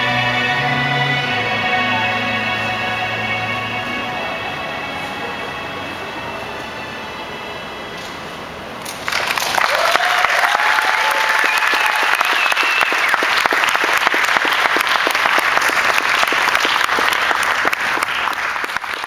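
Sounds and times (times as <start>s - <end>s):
audience applause: 8.8s - 19.0s
audience cheering: 9.1s - 19.0s.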